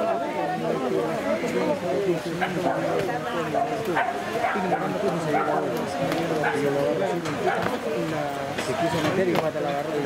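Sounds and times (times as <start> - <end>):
babble of chatter: 0.0 - 10.0.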